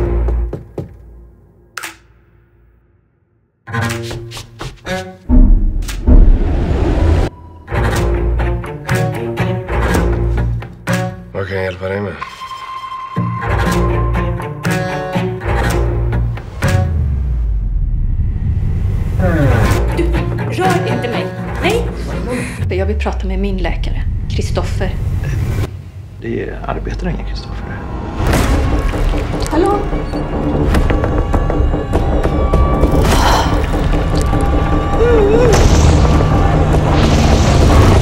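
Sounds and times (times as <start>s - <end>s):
deep bass drone: 16.0s - 20.3s, 21.8s - 38.0s.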